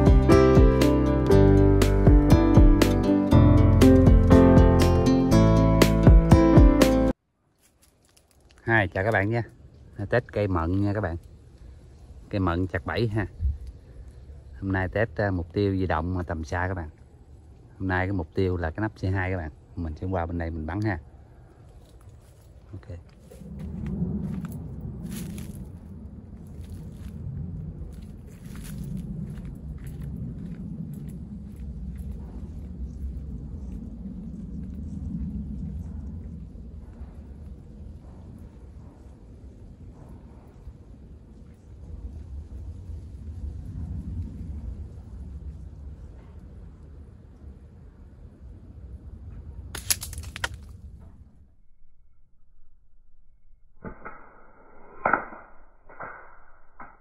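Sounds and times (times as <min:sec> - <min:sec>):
wind on microphone: 0:09.7 - 0:17.8, 0:20.3 - 0:51.4
footsteps on dry dirt: 0:21.8 - 0:33.3.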